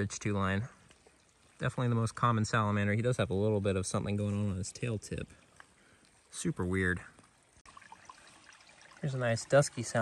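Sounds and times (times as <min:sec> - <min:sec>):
water trickling: 0:00.0 - 0:10.0.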